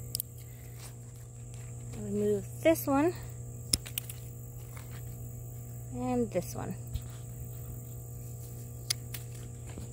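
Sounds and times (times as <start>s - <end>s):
high-pitched insect buzz: 0.0s - 9.9s
low steady hum: 0.0s - 9.9s
hand pruners clicking: 3.7s - 4.2s.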